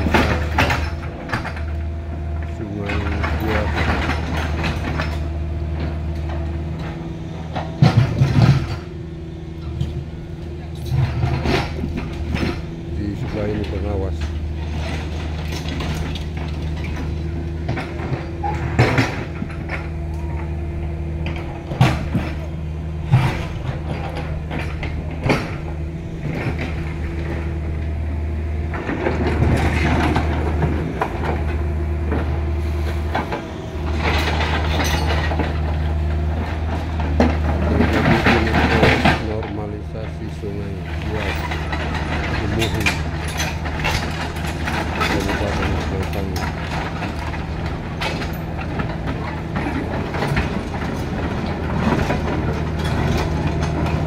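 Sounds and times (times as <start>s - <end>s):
excavator diesel engine running: 0.0s - 54.0s.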